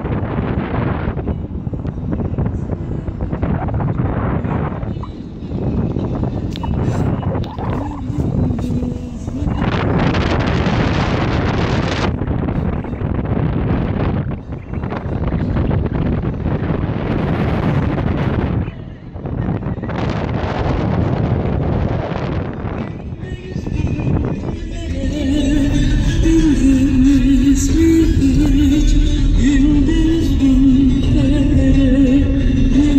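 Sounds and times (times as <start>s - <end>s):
car road noise: 0.0s - 32.9s
wind rushing at car window: 0.0s - 32.9s.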